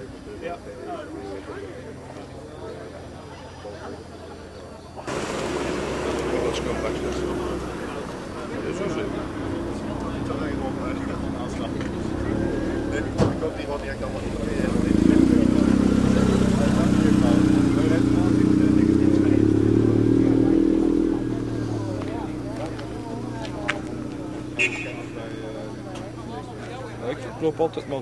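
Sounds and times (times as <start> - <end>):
people talking: 0.0 - 28.0
car engine running: 5.1 - 26.6.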